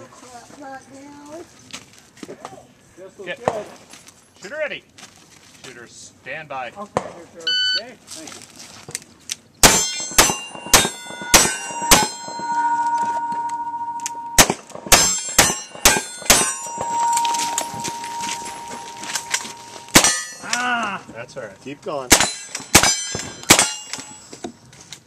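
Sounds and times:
steel plate ringing clang: 9.6 - 20.8, 22.0 - 24.3.

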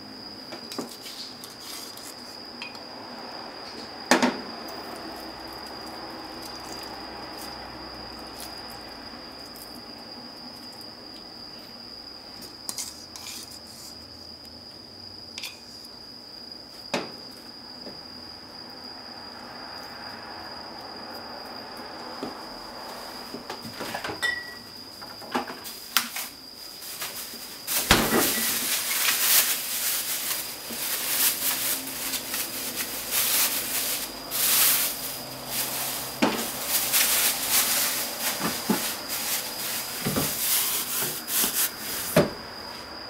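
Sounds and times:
taps and clinks of kitchenware: 24.2 - 24.6.

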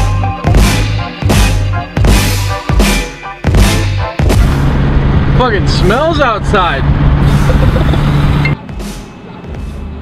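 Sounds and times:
road and wind noise inside car: 4.4 - 8.6.

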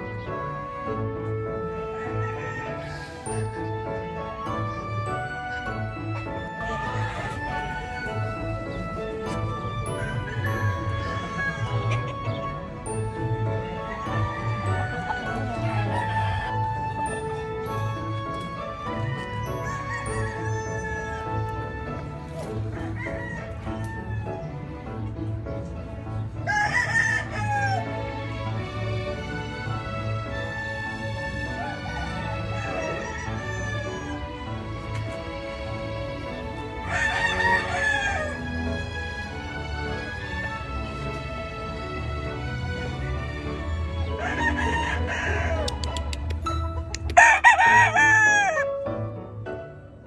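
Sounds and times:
rooster crowing: 1.9 - 3.2, 10.0 - 12.0, 13.9 - 16.8, 19.5 - 21.4, 22.8 - 24.5, 26.5 - 27.9, 31.6 - 34.2, 36.8 - 38.6, 44.1 - 45.9, 47.1 - 48.7
background music with beat: 2.8 - 26.0, 45.5 - 49.7.

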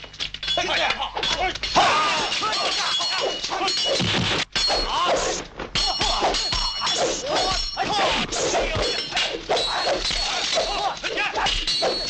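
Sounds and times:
blows and clashing weapons: 0.1 - 12.0
fighters shouting and yelling: 0.5 - 4.0, 4.7 - 12.0.

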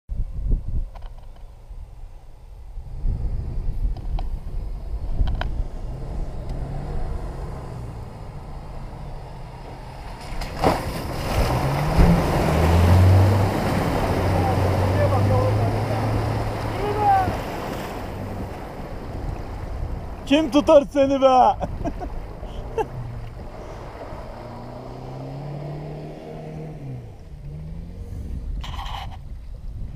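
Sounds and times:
suv engine revving: 2.7 - 20.7, 21.6 - 29.1
water and mud splashing: 5.7 - 27.8.

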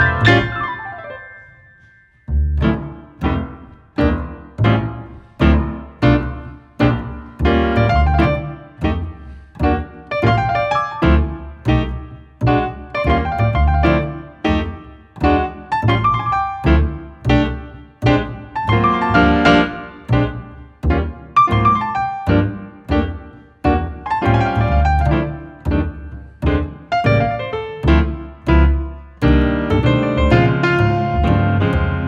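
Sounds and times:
jazz piano: 0.0 - 32.0
upright double bass: 0.0 - 32.0.

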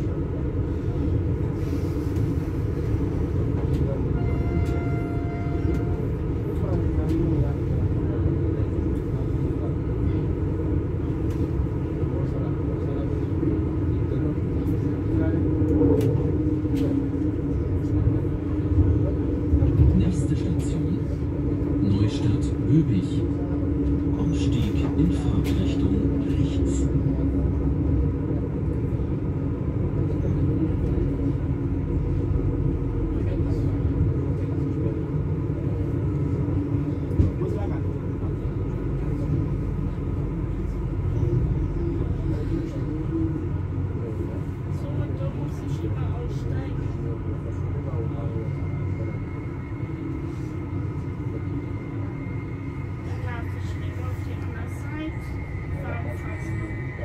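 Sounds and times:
train drive drone: 0.0 - 57.0
train wheels rumbling on track: 0.0 - 57.0.

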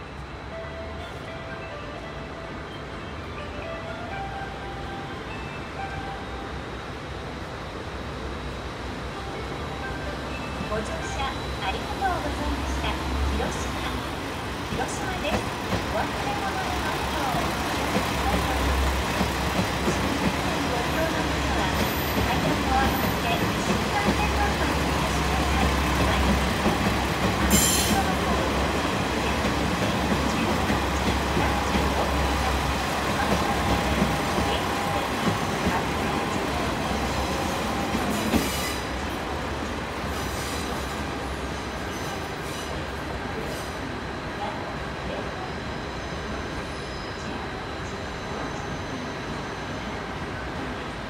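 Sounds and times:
diesel railcar engines running: 0.0 - 51.0.

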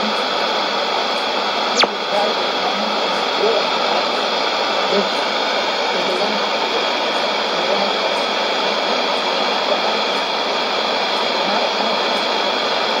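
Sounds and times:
shortwave radio static: 0.0 - 13.0
faint radio voice: 11.2 - 12.8.

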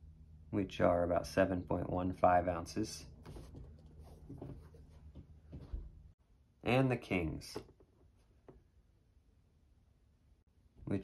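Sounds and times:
soft rustling and scraping: 3.2 - 6.2.

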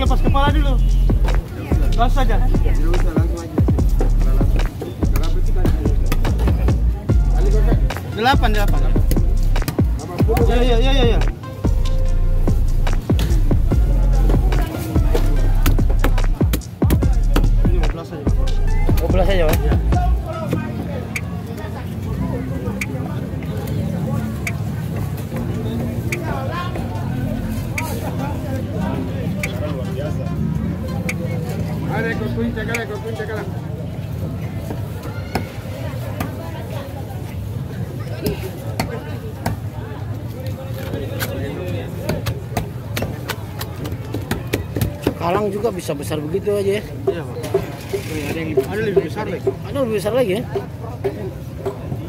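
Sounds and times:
background voices and chatter: 0.0 - 52.0
steady low rumble: 10.4 - 16.4.

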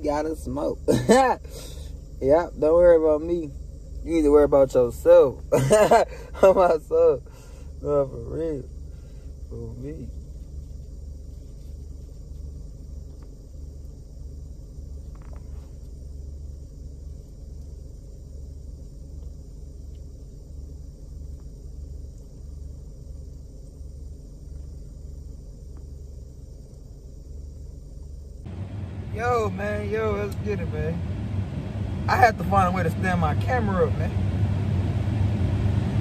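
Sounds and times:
car engine idling: 0.0 - 36.0.

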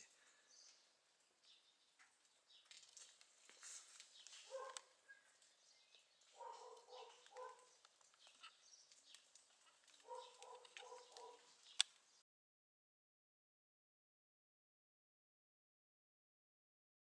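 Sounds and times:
distant animal calls: 4.3 - 5.4, 6.3 - 11.6.

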